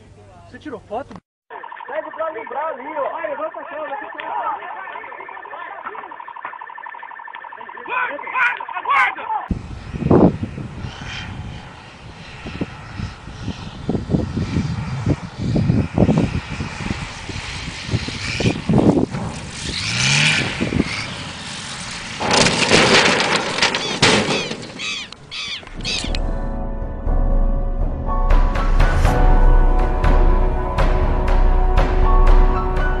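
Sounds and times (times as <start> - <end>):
wind buffeting microphone: 9.5 - 26.2
propeller plane flying low: 9.5 - 26.4.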